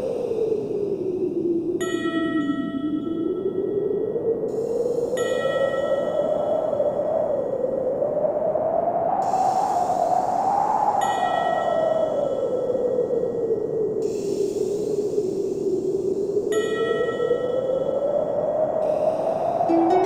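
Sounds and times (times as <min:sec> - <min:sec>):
ambient relaxation music: 0:00.0 - 0:20.0
wind-like whoosh: 0:02.7 - 0:20.0
chime-like notes ringing: 0:19.7 - 0:20.0.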